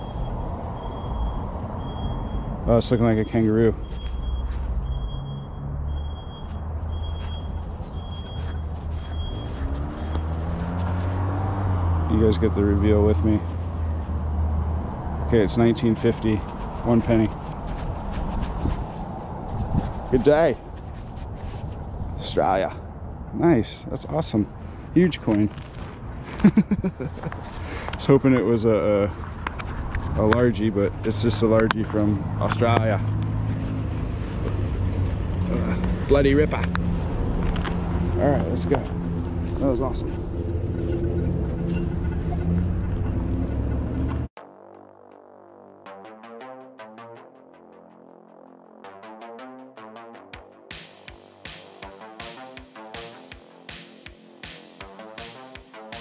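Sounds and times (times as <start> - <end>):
reversing alarm beeping: 0.0 - 9.5
vehicle engine humming: 0.0 - 22.2, 24.2 - 44.4
street background noise: 0.0 - 44.4.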